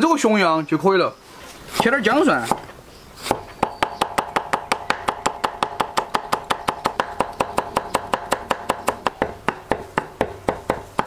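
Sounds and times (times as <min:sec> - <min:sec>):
cleaver chopping on wooden block: 0:01.7 - 0:11.0.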